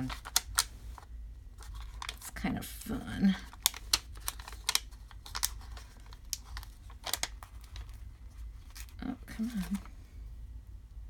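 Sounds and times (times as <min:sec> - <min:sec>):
paper crackling and crinkling: 0:00.0 - 0:10.0.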